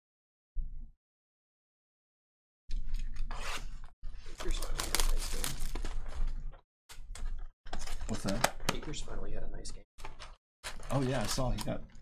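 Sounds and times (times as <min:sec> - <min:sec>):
cellophane tearing and crinkling: 0:04.4 - 0:06.1, 0:10.6 - 0:11.8.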